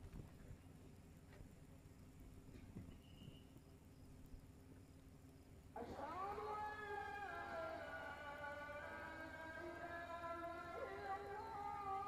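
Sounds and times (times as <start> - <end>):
person singing long chant note: 5.8 - 12.0.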